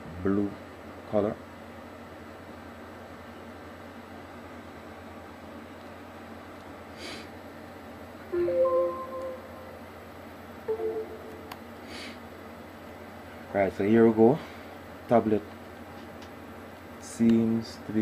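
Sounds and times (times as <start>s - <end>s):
low steady hum: 7.7s - 13.9s
tablet startup chime: 8.3s - 9.8s, 10.7s - 11.4s.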